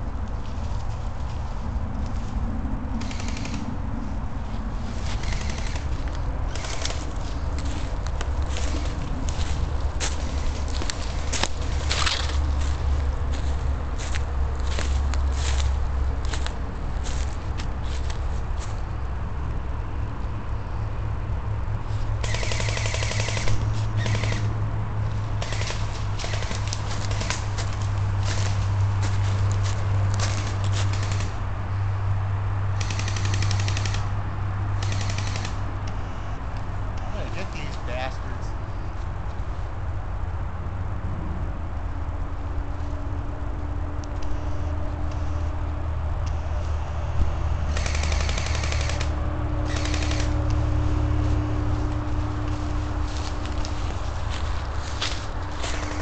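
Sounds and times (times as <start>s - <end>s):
airsoft rifle full-auto bursts: 3.0s - 3.7s, 5.1s - 5.9s, 6.5s - 7.1s, 22.2s - 24.5s, 25.4s - 27.5s, 30.3s - 31.4s, 32.8s - 34.1s, 34.8s - 35.6s, 47.7s - 50.5s, 55.7s - 56.0s.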